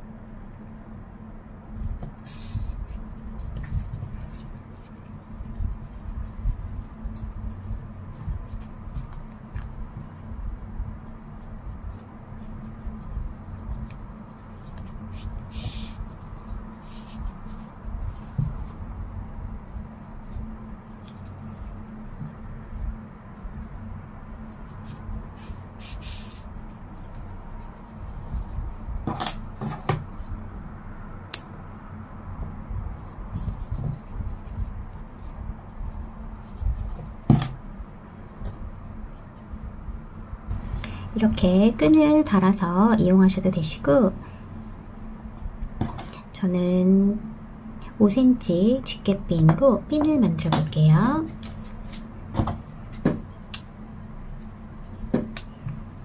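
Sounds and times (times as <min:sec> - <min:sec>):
steady low hum: 0:00.0 - 0:56.0
hands rubbing yarn: 0:11.3 - 0:19.0, 0:19.6 - 0:28.9.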